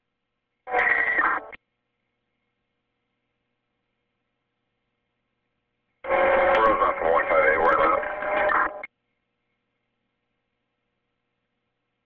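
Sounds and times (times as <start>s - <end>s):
garbled radio voice: 6.0s - 8.9s.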